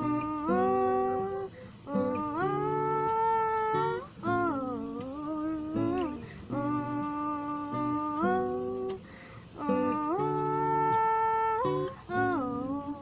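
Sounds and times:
strummed acoustic guitar: 0.0 - 13.0
woman singing held notes: 0.0 - 13.0.

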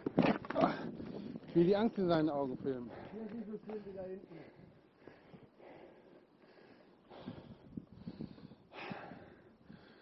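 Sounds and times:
heavy breathing: 4.3 - 10.0.

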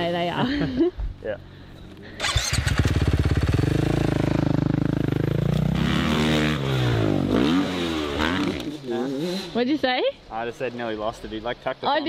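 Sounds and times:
dirt bike engine revving: 2.2 - 9.7.

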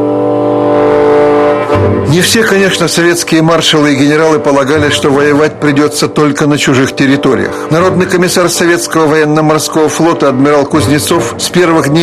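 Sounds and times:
long held chord: 0.0 - 10.0
narrator speaking: 2.0 - 12.0.

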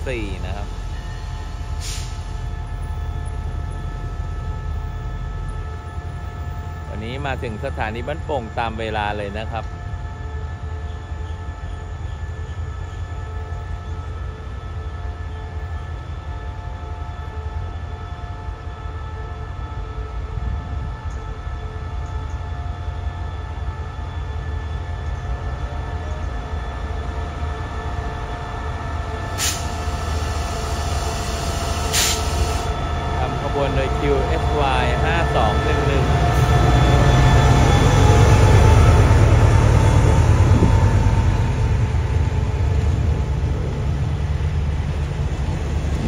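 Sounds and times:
locomotive whine: 0.0 - 46.0
locomotive engine rumble: 19.7 - 46.0.

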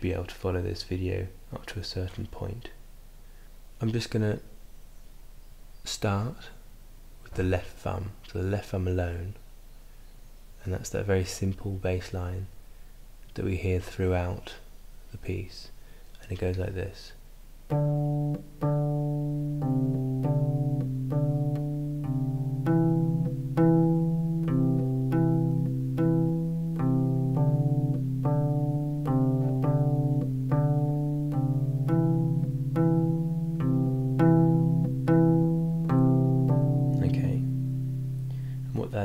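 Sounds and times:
harp low plucked notes: 17.7 - 39.0.

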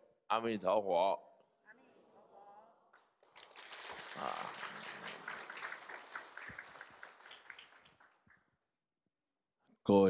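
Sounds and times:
small group applauding: 2.9 - 8.5.

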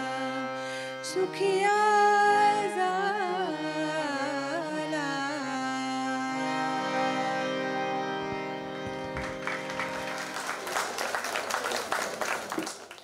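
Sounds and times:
song with held sung note: 0.0 - 8.8
audience applause: 9.1 - 13.0.

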